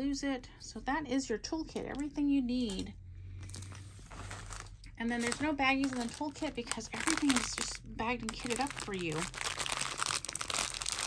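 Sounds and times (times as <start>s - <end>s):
low hum: 0.0s - 9.5s
plastic packaging crinkling: 3.4s - 11.0s.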